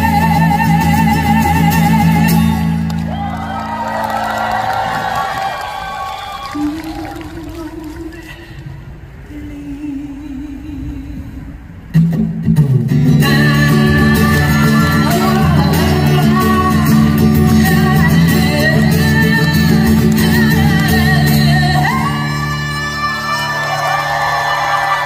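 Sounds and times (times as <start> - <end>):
acoustic guitar strumming: 0.0 - 3.1, 12.0 - 23.6
man singing: 12.9 - 23.6.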